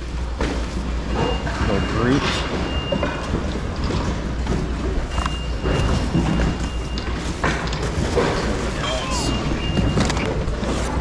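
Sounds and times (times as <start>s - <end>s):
high electronic beep: 8.9s - 10.1s.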